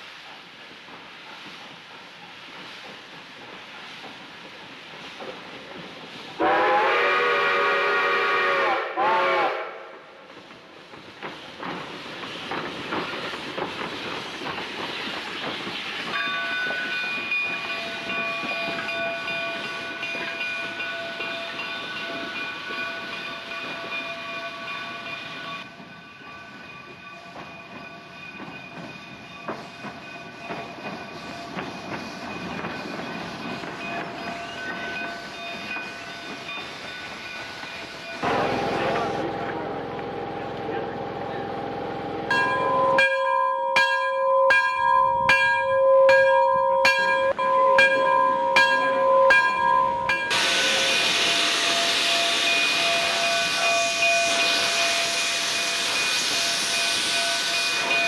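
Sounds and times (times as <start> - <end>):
steam locomotive running: 0.0 - 58.0
steam whistle blasts: 6.4 - 10.0, 50.3 - 57.9.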